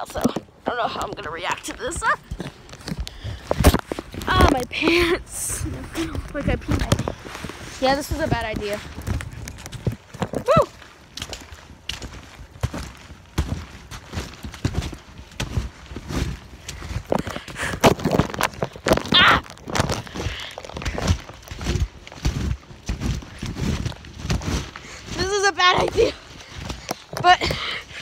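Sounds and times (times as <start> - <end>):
thuds and crunches on trampoline: 0.0 - 28.0
person exclaiming: 10.4 - 10.7.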